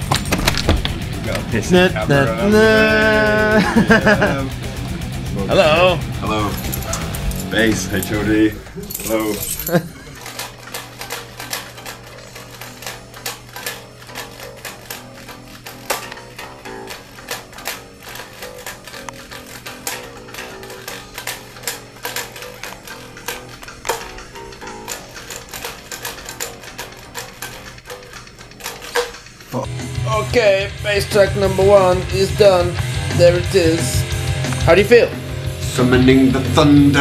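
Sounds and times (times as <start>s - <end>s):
fast electric bass plucking: 0.0s - 8.8s, 29.6s - 37.0s.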